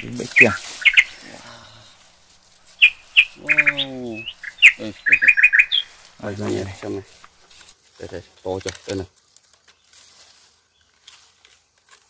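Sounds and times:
rat squeaking: 0:00.0 - 0:01.2, 0:02.7 - 0:06.8.

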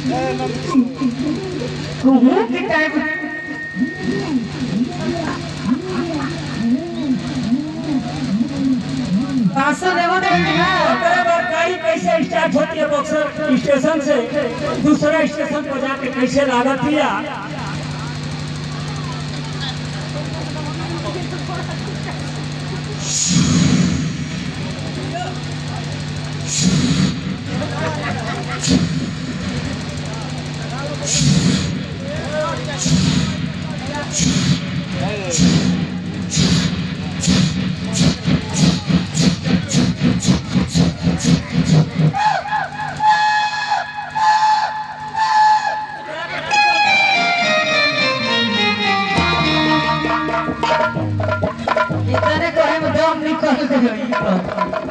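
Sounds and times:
faint crowd chatter: 0:00.0 - 0:11.9, 0:12.6 - 0:54.9
loudspeaker hum: 0:00.0 - 0:54.9
man imitating train whistle: 0:42.2 - 0:47.9.

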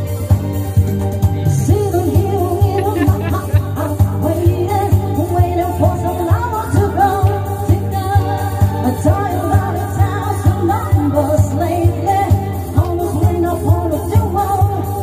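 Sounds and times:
women singing into microphones: 0:01.4 - 0:15.0.

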